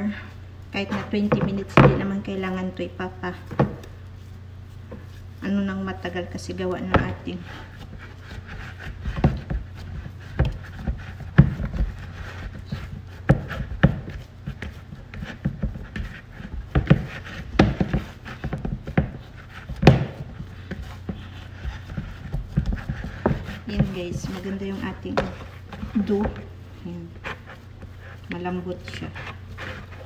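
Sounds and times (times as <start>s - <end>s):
steady low hum: 0.0s - 30.0s
dough thumping in plastic bowl: 0.9s - 2.3s, 6.8s - 26.5s.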